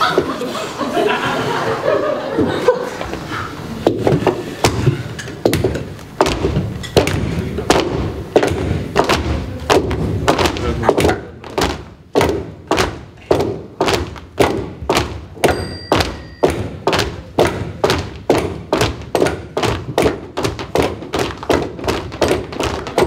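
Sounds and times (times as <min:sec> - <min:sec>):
walking sticks knocking on wooden floor: 0:03.8 - 0:23.0.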